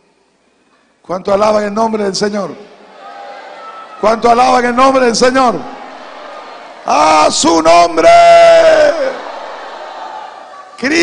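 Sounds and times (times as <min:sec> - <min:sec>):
man shouting amplified: 0:03.9 - 0:05.8, 0:06.8 - 0:09.3, 0:10.5 - 0:11.0.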